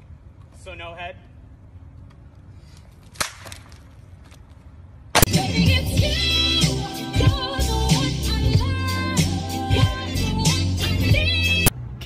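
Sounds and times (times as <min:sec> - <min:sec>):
skateboard cracking on asphalt: 0:03.0 - 0:04.6.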